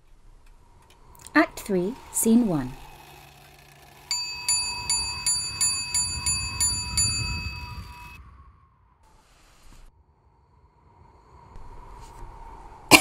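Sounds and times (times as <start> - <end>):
clock bell striking: 4.1 - 8.2.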